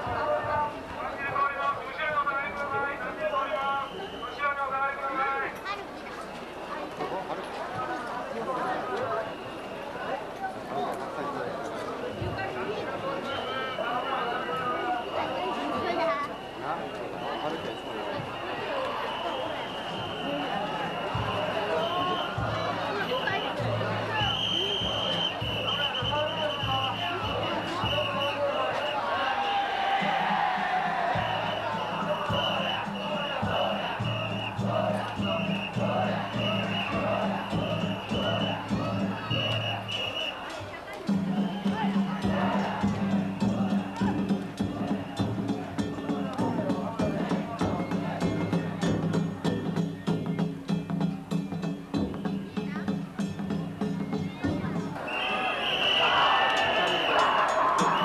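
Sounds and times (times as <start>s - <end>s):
crowd chatter: 0.0s - 58.0s
drum and gong beats: 30.0s - 39.4s, 41.1s - 55.0s.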